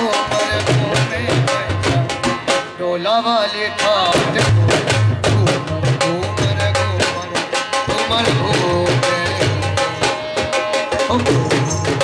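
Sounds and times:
hand drum beating fast rhythm: 0.0 - 2.8, 4.0 - 12.0
harmonium and string melody: 0.0 - 12.0.

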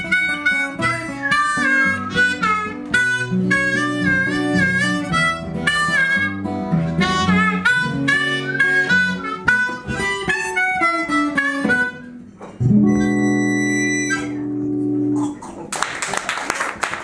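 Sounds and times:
harmonica solo: 0.0 - 14.8
guitar accompaniment: 0.0 - 15.8.

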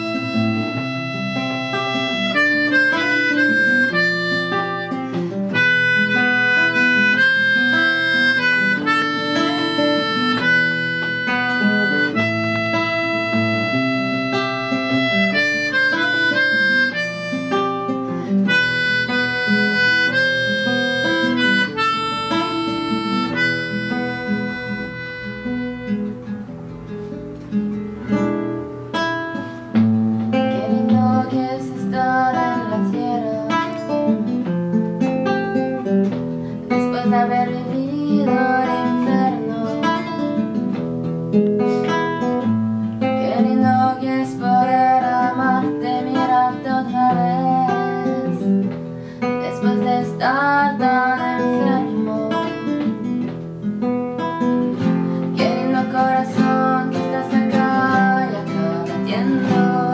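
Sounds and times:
harmonica melody: 0.0 - 59.9
strummed acoustic guitar: 0.0 - 59.9.

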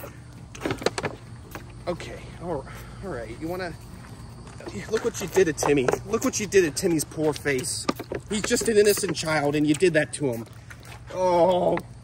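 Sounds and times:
camels sucking and slurping: 6.2 - 12.0.

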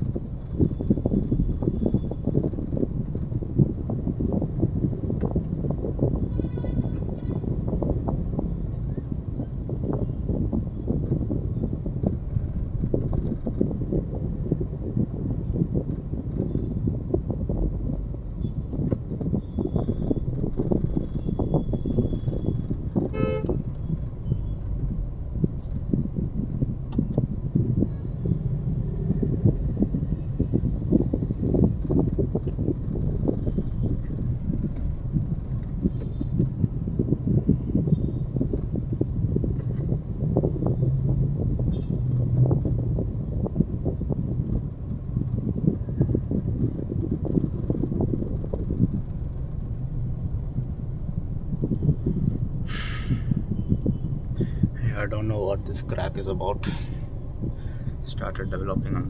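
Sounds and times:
traffic engines and tyres rumbling: 0.0 - 59.0
vehicle horn toot: 6.3 - 7.4, 23.0 - 23.7.

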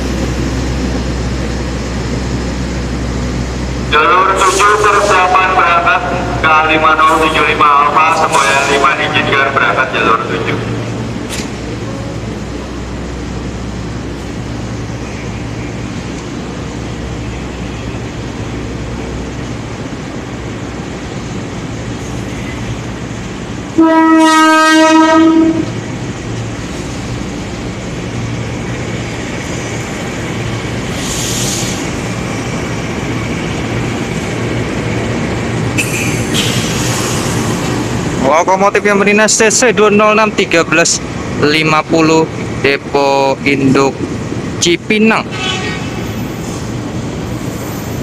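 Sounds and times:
train wheels clattering on rails: 11.2 - 11.8, 28.8 - 38.2
train horn blast: 23.8 - 25.7, 45.3 - 46.0.

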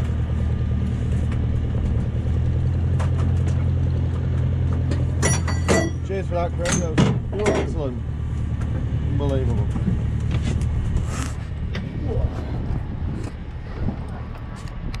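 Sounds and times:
steady low rumble: 0.0 - 15.0.

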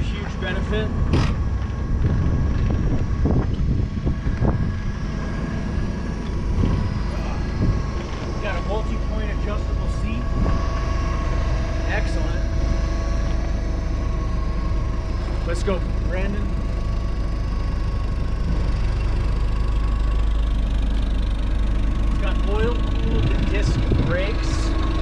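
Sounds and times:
forklift engine running: 0.0 - 25.0
steady whine: 0.0 - 25.0.

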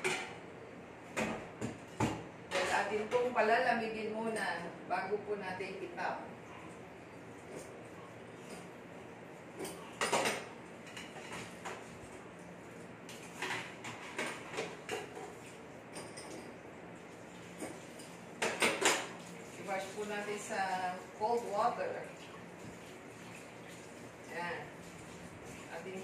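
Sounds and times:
dishes and utensils clattering: 0.0 - 0.4, 1.2 - 3.4, 8.4 - 8.8, 9.5 - 12.0, 13.1 - 16.6, 17.5 - 19.3.

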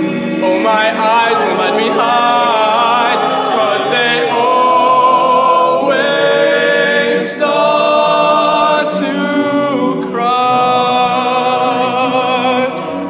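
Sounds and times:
male a cappella group singing: 0.0 - 13.0
tenor soloist singing: 0.0 - 13.0.

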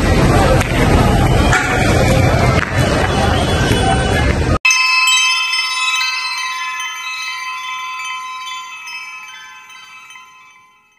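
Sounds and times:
chime-like ringing tones: 4.6 - 10.9.

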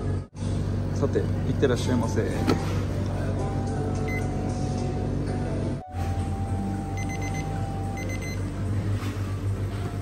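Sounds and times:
kitchen timer beeping: 6.9 - 8.5.

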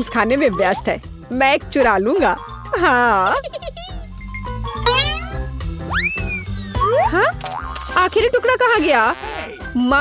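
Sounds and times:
background music with steady beat: 0.0 - 10.0
comic whistle sound effect: 5.9 - 6.9.

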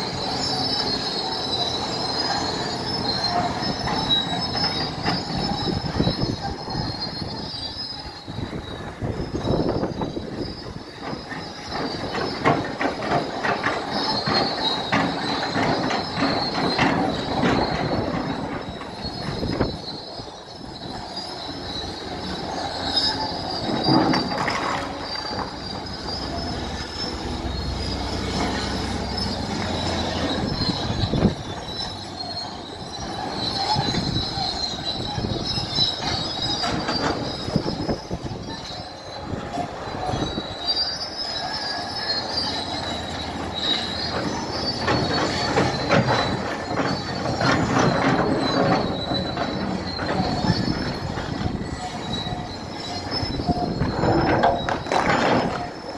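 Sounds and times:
crawler tracks squealing and clanking: 0.0 - 55.9
diesel engine running: 0.0 - 55.9.

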